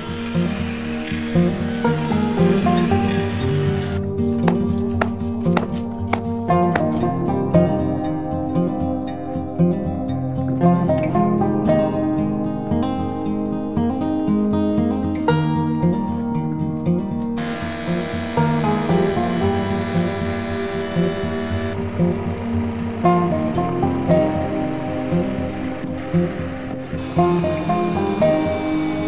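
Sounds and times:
chainsaw cutting wood: 0.0 - 4.0, 17.4 - 29.0
background music: 0.0 - 29.0.

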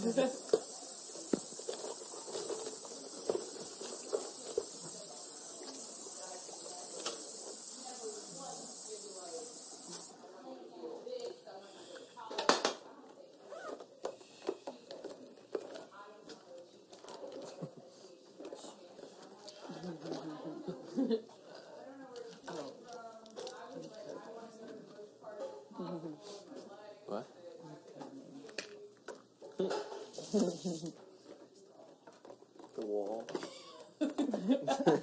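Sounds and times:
steady high hiss: 0.0 - 10.2
indistinct chatter: 0.0 - 26.9.

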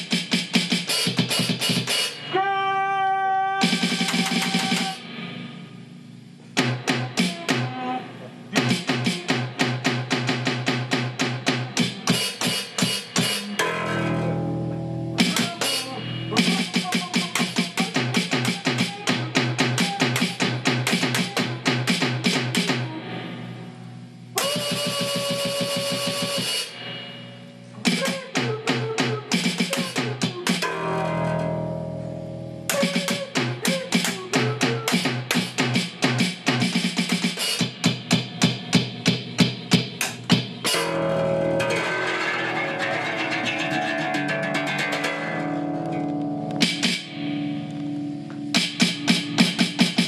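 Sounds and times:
electronic drum pad beats: 0.0 - 2.5, 3.6 - 50.0.

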